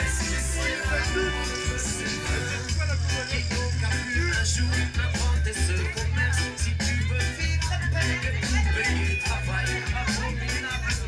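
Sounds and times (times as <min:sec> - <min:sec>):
reggae music on sound system: 0:00.0 - 0:11.0.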